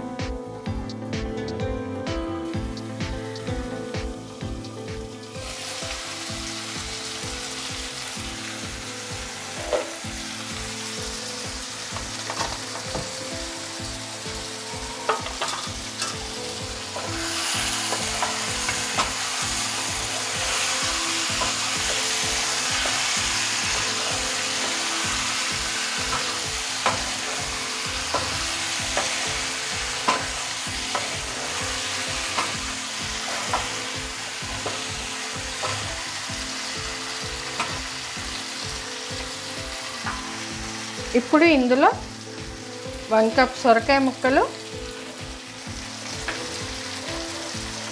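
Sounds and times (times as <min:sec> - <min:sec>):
chicken sizzling in a pan: 0:02.5 - 0:47.9.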